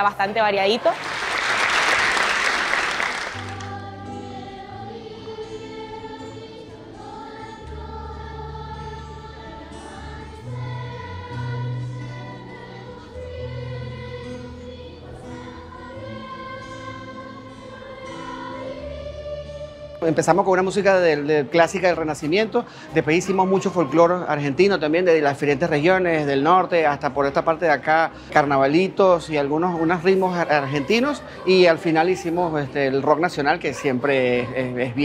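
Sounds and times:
audience applause: 0.8s - 3.8s
children's choir singing: 2.2s - 21.4s, 22.0s - 25.0s, 29.4s - 35.0s.

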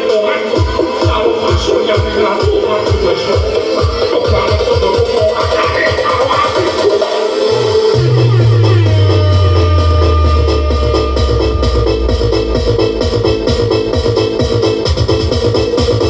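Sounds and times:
electronic dance music: 0.0s - 16.0s
deep bass note sliding downward: 7.5s - 16.0s
kick drum build-up: 7.5s - 16.0s.

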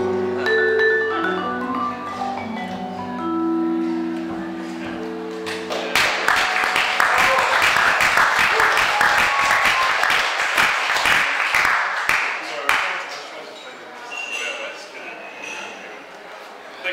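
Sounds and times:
vibraphone chord ringing: 0.0s - 5.7s
audience clapping: 5.4s - 13.3s.

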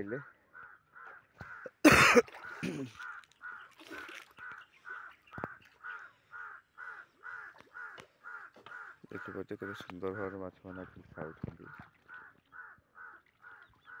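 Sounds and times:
bird calling: 0.0s - 14.0s.

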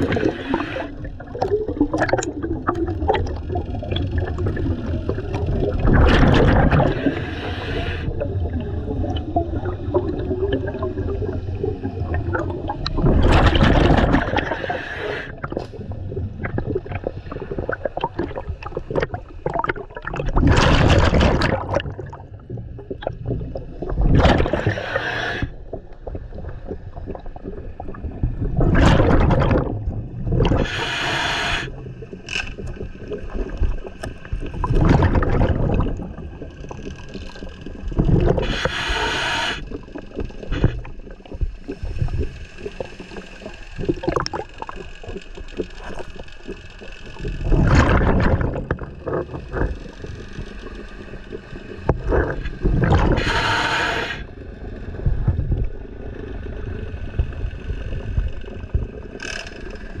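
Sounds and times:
regulator inhale hiss: 0.0s - 1.1s, 6.9s - 8.1s, 14.4s - 15.4s, 24.4s - 25.6s, 30.5s - 31.7s, 38.4s - 39.7s, 53.1s - 54.3s
exhaled bubbles rushing: 0.0s - 59.3s
low rumble of moving water: 0.0s - 60.0s.

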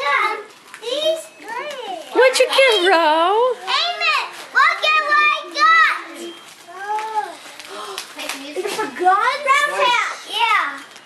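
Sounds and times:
children calling out: 3.6s - 10.9s.

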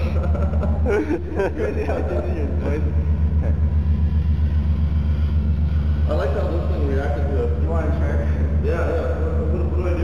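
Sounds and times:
people laughing: 0.0s - 2.9s
deep electronic bass drone: 0.0s - 10.0s
voices talking: 0.0s - 10.0s.

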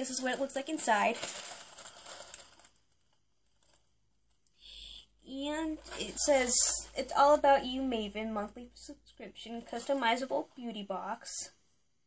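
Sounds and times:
cardboard box rustling: 0.3s - 2.7s.

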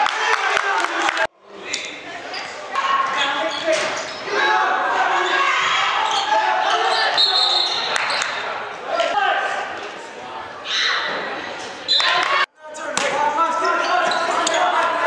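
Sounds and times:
shouts and chatter in a gym: 0.0s - 15.0s.

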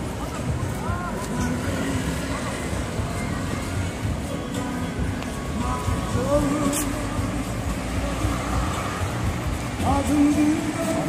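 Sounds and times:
faint voices: 0.0s - 11.0s
traffic rumble: 0.0s - 11.0s.

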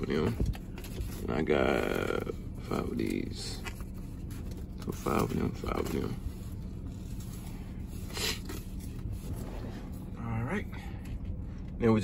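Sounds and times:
vinyl sheets rustling: 0.0s - 11.7s
steady low hum: 0.0s - 12.0s.

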